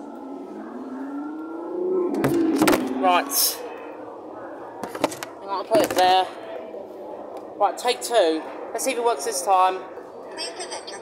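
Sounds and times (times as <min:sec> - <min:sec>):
car engine revving sound effect: 0:00.1 - 0:03.6.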